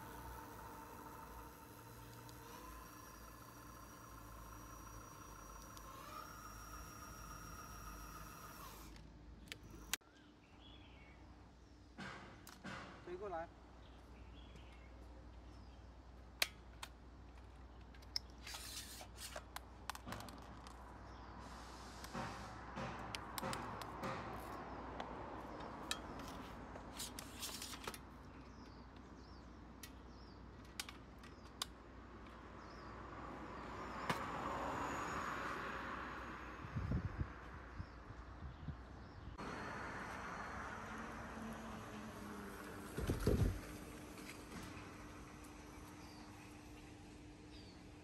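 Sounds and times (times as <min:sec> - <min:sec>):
rustling sliding noise: 0:18.4 - 0:19.5, 0:21.4 - 0:22.6, 0:26.2 - 0:27.9.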